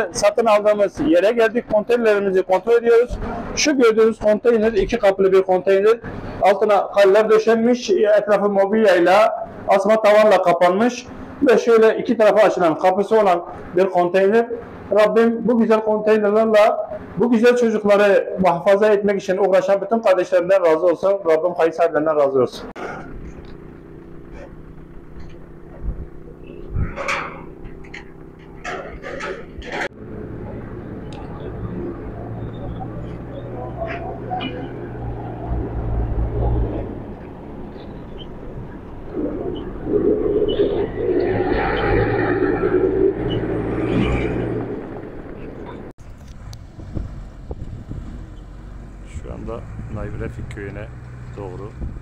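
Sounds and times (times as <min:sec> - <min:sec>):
heavy truck engines passing: 0:00.0 - 0:52.0.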